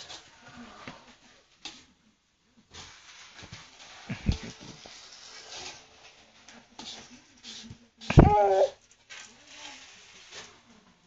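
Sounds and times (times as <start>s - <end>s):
short high-pitched cry: 8.1s - 8.8s.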